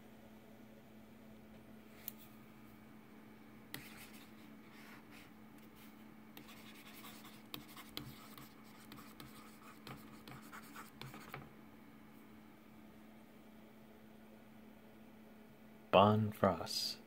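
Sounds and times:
stylus scratching on tablet: 3.7 - 11.5.

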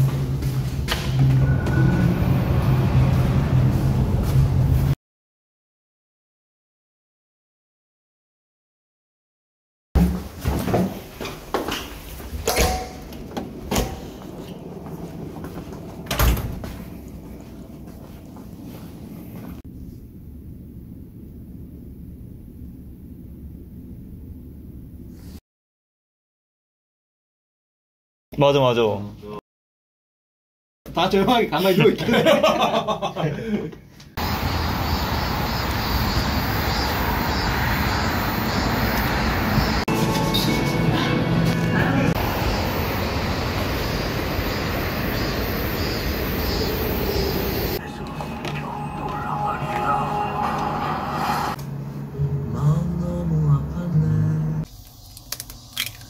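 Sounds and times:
footsteps and handling noise: 0.0 - 1.4, 10.0 - 19.6
loud street ambience rushing: 0.0 - 5.0, 13.1 - 19.4, 34.2 - 53.9
low room hum: 16.7 - 25.2.

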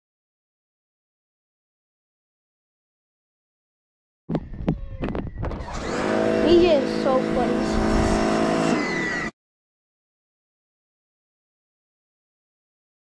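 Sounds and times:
pressure washer motor hum: 5.5 - 9.3.

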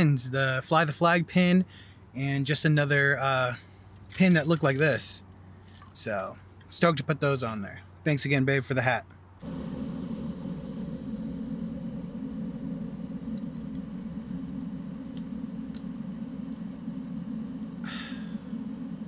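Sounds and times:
car cabin low rumble: 9.4 - 19.0.

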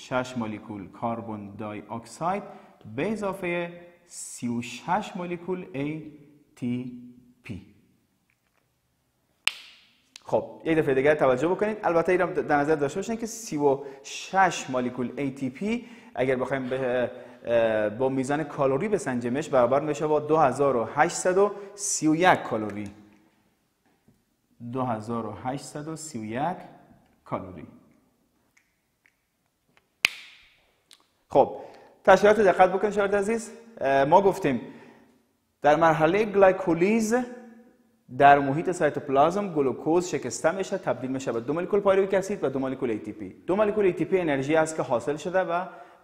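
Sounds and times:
marker cap snapping shut: 9.5 - 10.3, 30.0 - 30.5.

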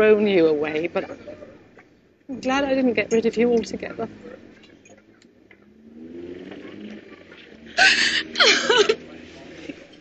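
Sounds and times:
woman crying and sobbing: 7.8 - 9.0.

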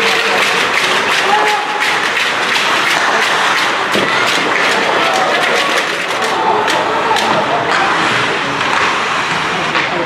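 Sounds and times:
sticks and puck clicking on ice: 0.0 - 7.9
crowd din: 0.0 - 10.0.

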